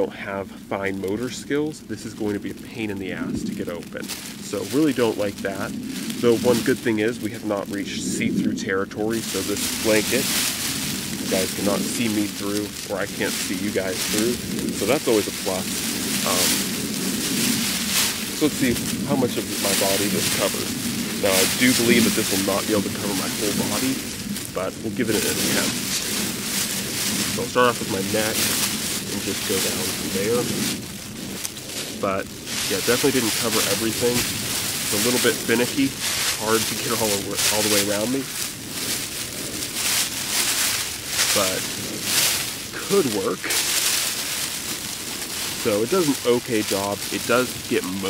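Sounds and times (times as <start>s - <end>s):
space blanket crinkling: 1.0s - 48.0s.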